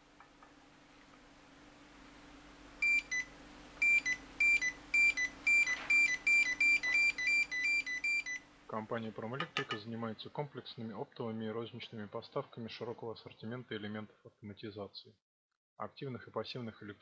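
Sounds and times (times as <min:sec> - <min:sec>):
buzzer beeping: 0:02.8 - 0:08.4.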